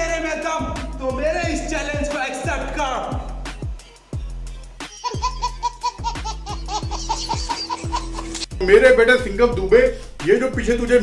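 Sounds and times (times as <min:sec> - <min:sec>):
hip-hop beat with deep bass: 0:00.0 - 0:11.0
baby laughing: 0:04.8 - 0:08.5.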